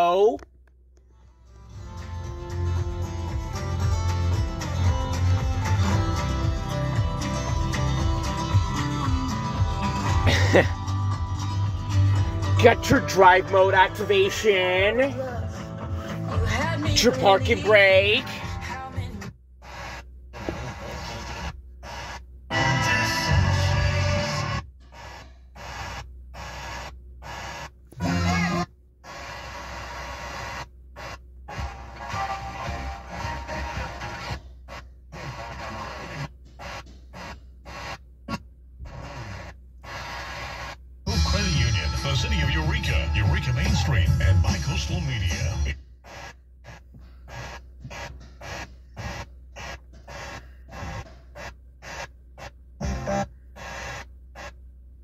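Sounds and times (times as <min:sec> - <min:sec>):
steady low hum: 0:00.0 - 0:55.0
radio music snatches: 0:01.5 - 0:54.6
radio voices: 0:10.0 - 0:10.7, 0:12.1 - 0:18.8, 0:19.6 - 0:24.4, 0:35.2 - 0:38.0, 0:38.9 - 0:52.1.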